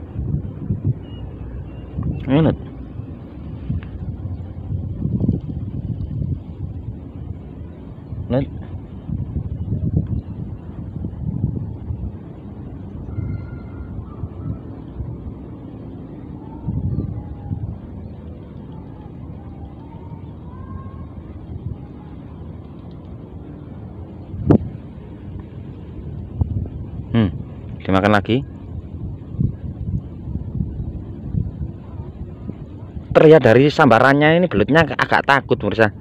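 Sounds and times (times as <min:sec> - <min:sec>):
wind buffeting microphone: 0:00.0 - 0:36.0.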